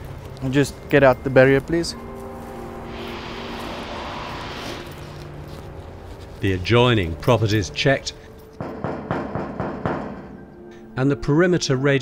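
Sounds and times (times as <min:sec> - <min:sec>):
vehicle passing by: 0:02.8 - 0:05.8.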